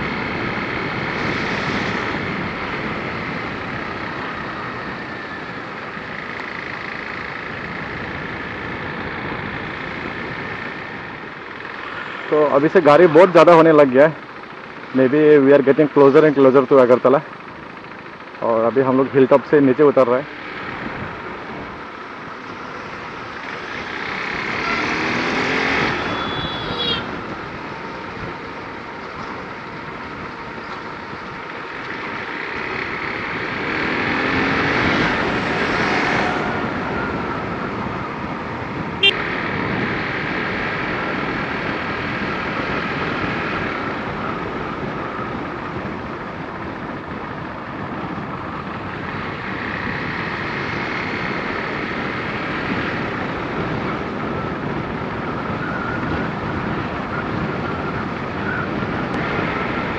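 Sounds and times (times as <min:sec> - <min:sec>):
motorcycle engine accelerating: 0:00.0 - 0:59.9
wind noise on microphone: 0:34.4 - 0:59.9.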